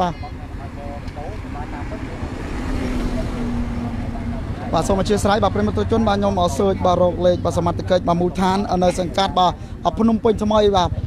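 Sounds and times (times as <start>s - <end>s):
faint voices: 0.0s - 11.0s
vehicle passing by: 0.4s - 10.0s.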